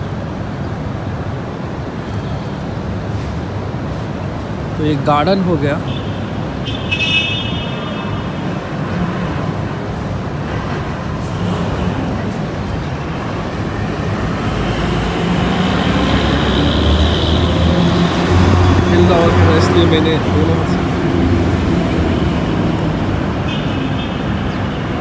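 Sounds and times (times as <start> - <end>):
outdoor noise: 0.0 - 25.0.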